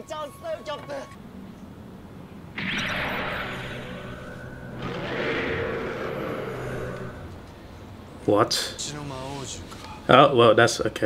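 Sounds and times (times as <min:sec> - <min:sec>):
sustained noisy sound effect: 0:02.6 - 0:07.8.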